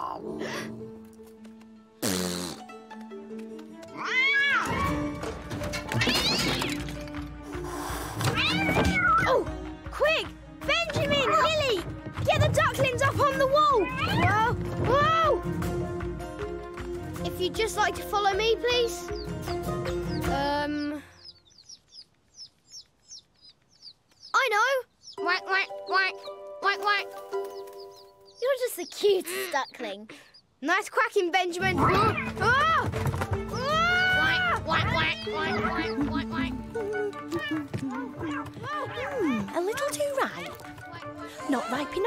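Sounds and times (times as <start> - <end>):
background music: 0.0 - 21.6, 24.4 - 29.9, 31.4 - 42.0
ducklings peeping: 19.1 - 26.4, 27.4 - 30.5.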